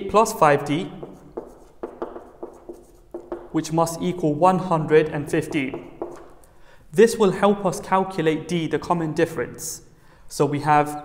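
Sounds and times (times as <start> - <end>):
marker writing on whiteboard: 0.3 - 6.5.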